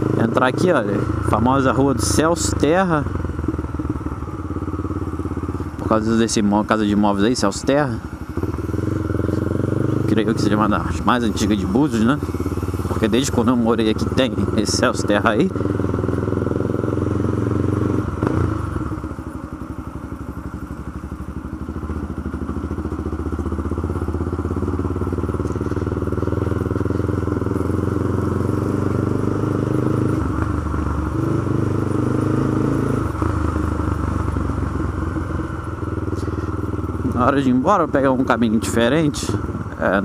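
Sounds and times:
motorcycle engine running: 0.0 - 40.0
tyres rumbling over cobblestones: 0.0 - 40.0.

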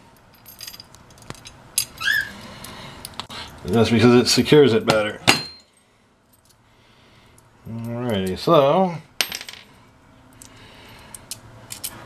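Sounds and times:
metal washers clinking in hand: 0.2 - 3.7, 10.3 - 12.0.

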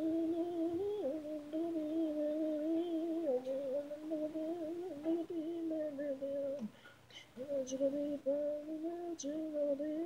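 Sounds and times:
woman singing long held notes: 0.0 - 6.8, 7.4 - 10.0.

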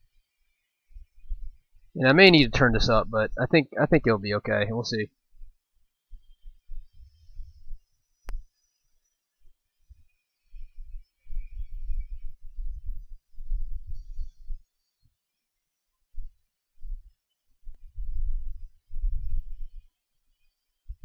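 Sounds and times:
hot air buffeting microphone: 2.0 - 5.0.

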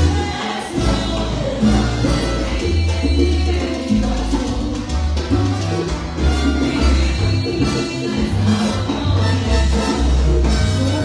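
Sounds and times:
low bass notes: 0.0 - 11.0
salsa band playing: 0.0 - 11.0.

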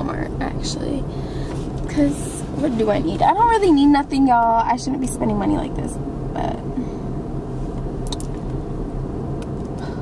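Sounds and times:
car idling hum: 0.0 - 10.0.

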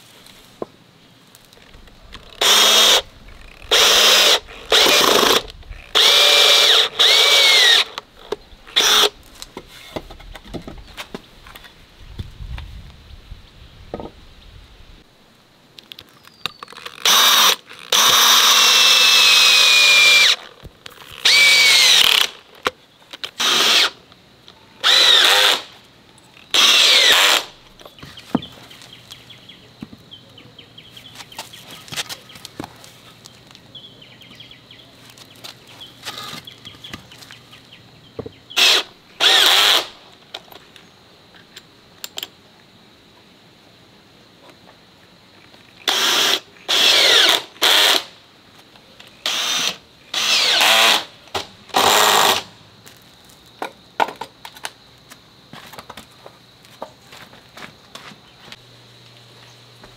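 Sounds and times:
cordless drill driving screws: 2.2 - 9.1, 16.9 - 20.4, 21.2 - 22.4, 23.3 - 24.0, 24.8 - 25.7, 26.5 - 27.5, 38.6 - 39.9, 45.9 - 48.1, 49.2 - 51.1, 51.7 - 52.4.

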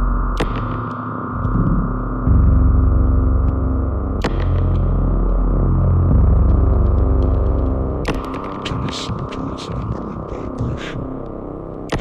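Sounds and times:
humming electronic drone: 0.0 - 12.0.

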